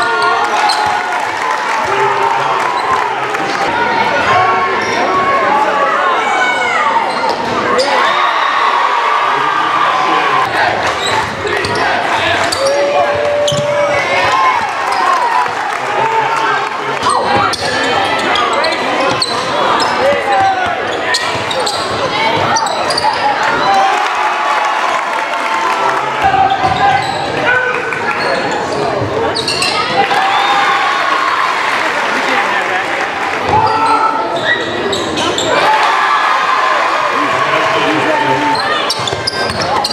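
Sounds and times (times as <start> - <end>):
fans and players shouting: 0.0 - 39.9
sneakers squeaking: 0.2 - 1.0, 7.0 - 8.1, 10.8 - 14.0, 17.0 - 23.4, 26.4 - 27.4, 28.2 - 29.9, 33.4 - 35.7, 38.5 - 39.9.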